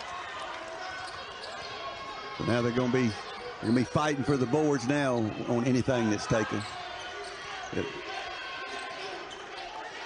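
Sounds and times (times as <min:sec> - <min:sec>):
arena background noise: 0:00.0 - 0:10.0.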